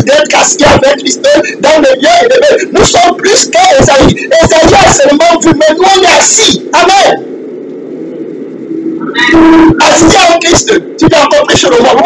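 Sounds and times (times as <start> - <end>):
man speaking: 0.0 - 7.3, 9.1 - 12.0
low steady hum: 0.0 - 12.0.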